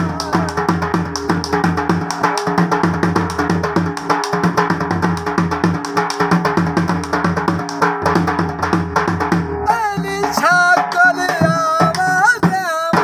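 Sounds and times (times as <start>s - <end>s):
barrel drum beaten with sticks: 0.0s - 13.0s.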